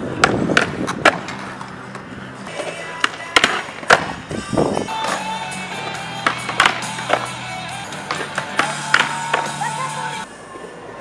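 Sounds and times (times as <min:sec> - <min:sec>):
skateboard clacks: 0:00.0 - 0:04.2, 0:04.9 - 0:10.2
skateboard wheels rolling on concrete: 0:00.0 - 0:11.0
background music: 0:02.0 - 0:10.3.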